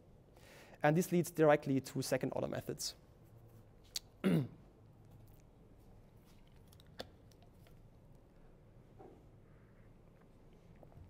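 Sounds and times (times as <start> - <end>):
man clearing his throat: 4.2 - 4.6.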